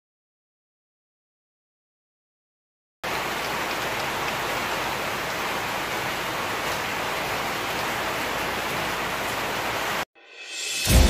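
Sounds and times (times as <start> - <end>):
rain falling: 3.0 - 10.1.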